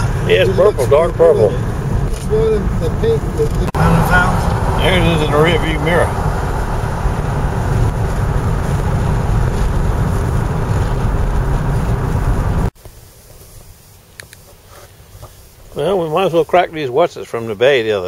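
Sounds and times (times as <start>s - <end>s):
car road noise rumble: 0.0s - 18.0s.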